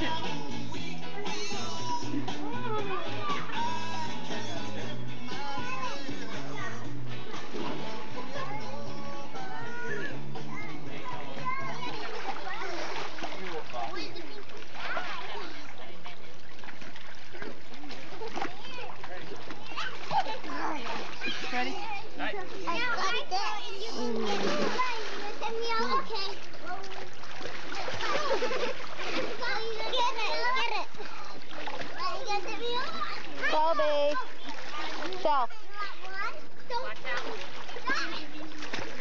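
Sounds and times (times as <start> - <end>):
children splashing in pool: 5.5 - 39.0
children calling out: 8.2 - 13.3, 19.6 - 21.8, 22.7 - 27.0.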